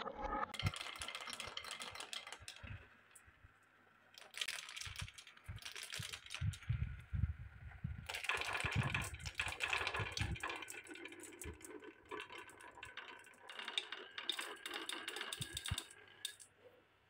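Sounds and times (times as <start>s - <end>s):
marbles clicking on wooden tracks: 0.6s - 16.5s
low rolling rumble: 6.4s - 8.1s.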